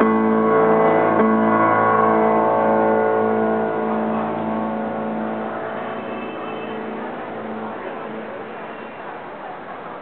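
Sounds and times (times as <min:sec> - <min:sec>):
piano chord ringing: 0:00.0 - 0:07.8.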